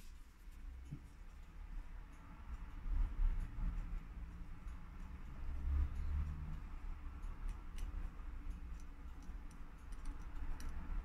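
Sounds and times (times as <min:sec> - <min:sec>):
watch movement clicks and ticks: 0:00.0 - 0:11.0.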